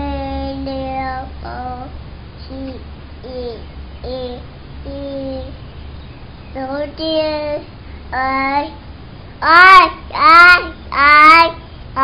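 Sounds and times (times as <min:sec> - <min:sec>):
toddler singing: 0:00.0 - 0:01.9, 0:02.5 - 0:05.6, 0:06.6 - 0:08.8, 0:09.4 - 0:12.0.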